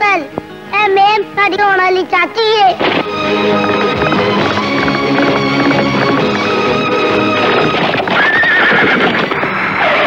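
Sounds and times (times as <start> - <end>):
film music: 0.4 - 10.0
hoofbeats on dirt: 2.7 - 10.0
horse whinny: 3.1 - 10.0.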